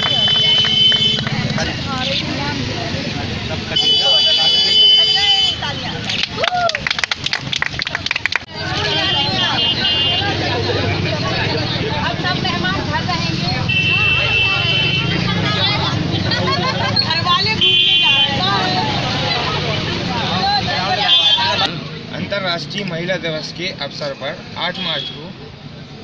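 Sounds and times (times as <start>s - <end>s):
women and girls chattering: 0.0s - 6.4s, 8.4s - 26.0s.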